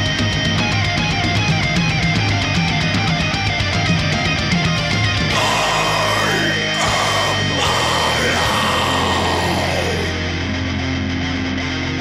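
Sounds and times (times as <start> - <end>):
distorted guitars: 0.0 - 12.0
heavy metal music: 0.0 - 12.0.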